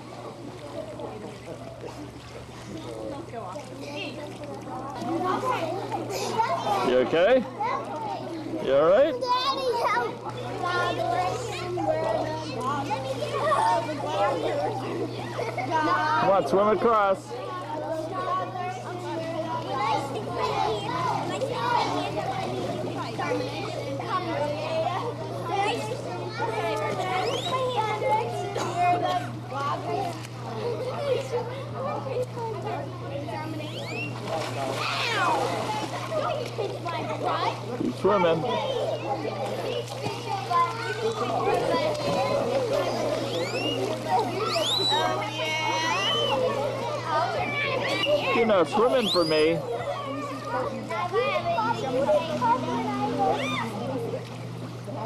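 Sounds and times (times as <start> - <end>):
children calling and chattering: 0.0 - 55.0
steady low hum: 0.0 - 55.0
voices: 0.0 - 55.0
water splashing in pool: 0.0 - 55.0
high squealing calls: 43.2 - 45.2, 49.0 - 49.5.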